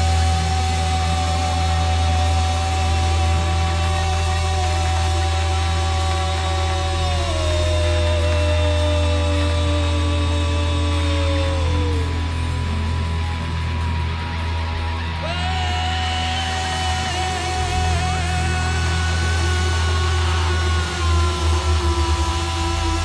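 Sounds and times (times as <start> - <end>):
rock band droning instrumental: 0.0 - 23.0.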